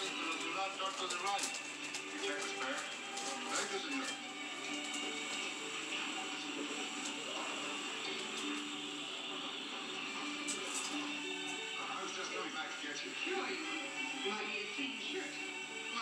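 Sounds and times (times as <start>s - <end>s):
television music: 0.0s - 16.0s
voices over music: 0.0s - 16.0s.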